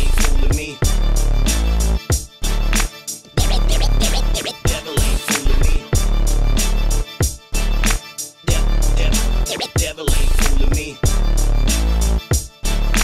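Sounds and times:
hip hop beat with heavy bass: 0:00.0 - 0:13.0
turntable scratching: 0:00.0 - 0:13.0.

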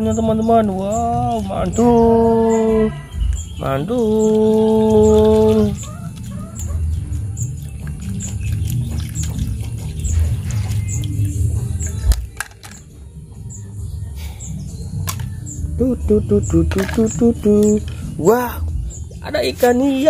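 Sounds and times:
water sloshing: 0:03.3 - 0:12.4.

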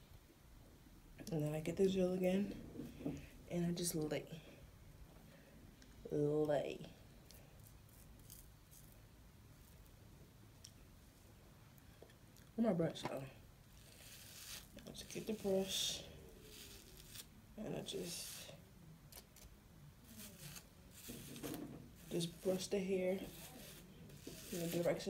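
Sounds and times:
hairbrush strokes through hair: 0:13.8 - 0:18.6, 0:20.0 - 0:25.0
hands rustling in hair: 0:20.2 - 0:25.0.

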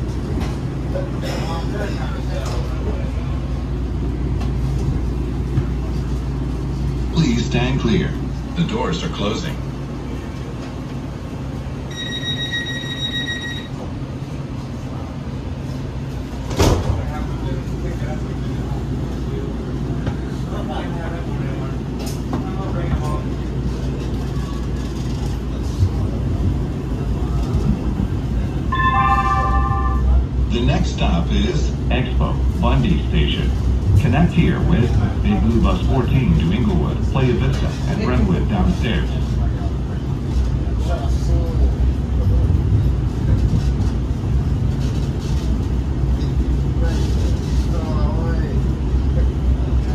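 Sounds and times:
train motors and wheels rumbling: 0:00.0 - 0:49.9
automated announcement: 0:07.1 - 0:09.7, 0:28.3 - 0:39.9
door-closing warning tone: 0:11.9 - 0:13.9, 0:28.7 - 0:30.2
train doors shutting: 0:16.3 - 0:17.3, 0:27.3 - 0:31.1
short chime: 0:28.7 - 0:30.2.

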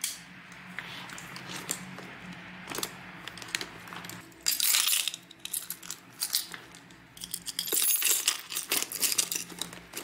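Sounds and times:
hard objects clicking and clinking: 0:01.1 - 0:10.0.

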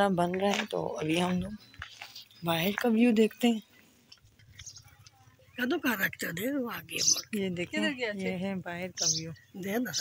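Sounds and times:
woman speaking: 0:00.0 - 0:01.6, 0:05.6 - 0:10.0.

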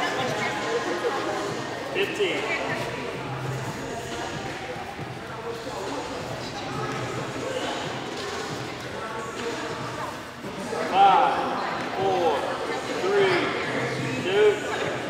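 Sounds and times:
murmur of voices echoing: 0:00.0 - 0:15.0.

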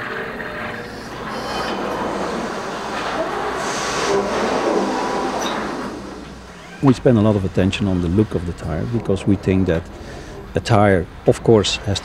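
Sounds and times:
faint machinery clanks: 0:00.0 - 0:12.0
industrial machinery rumble and hiss: 0:00.0 - 0:12.0.

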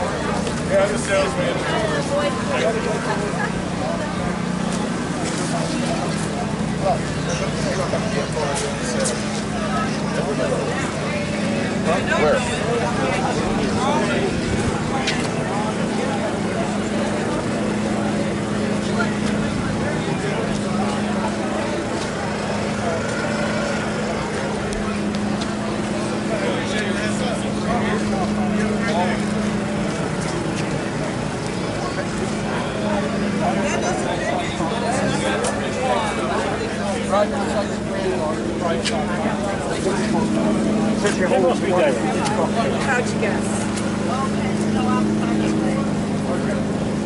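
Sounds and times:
people talking indistinctly: 0:00.0 - 0:47.0
steady low hum: 0:00.0 - 0:47.0.

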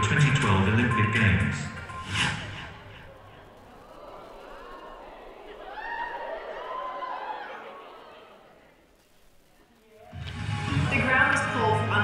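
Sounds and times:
voice over sound system: 0:00.0 - 0:03.0
background hush: 0:00.0 - 0:11.9.

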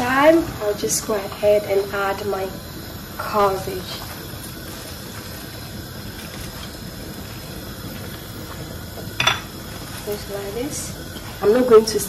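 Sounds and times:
stew bubbling in a pan: 0:00.0 - 0:12.0.

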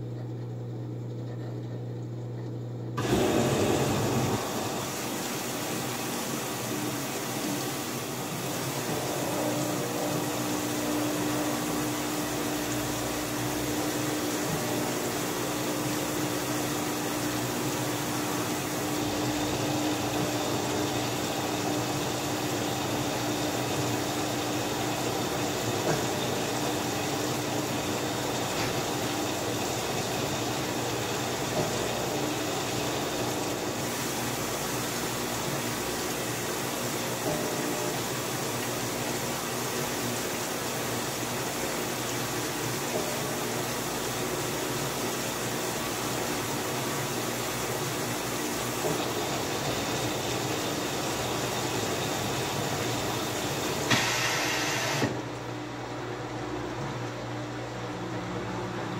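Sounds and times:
washing machine motor hum: 0:00.0 - 0:58.9
water sloshing in washer: 0:00.0 - 0:58.9.

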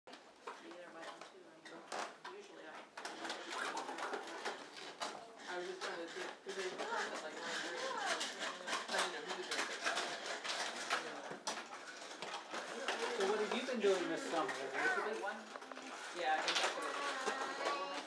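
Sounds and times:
adults talking: 0:03.2 - 0:18.0
young children babbling: 0:16.8 - 0:18.0.

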